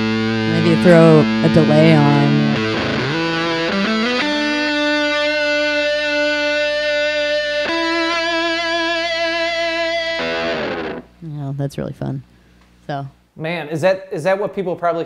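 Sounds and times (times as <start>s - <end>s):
distorted electric guitar lead: 0.0s - 11.2s.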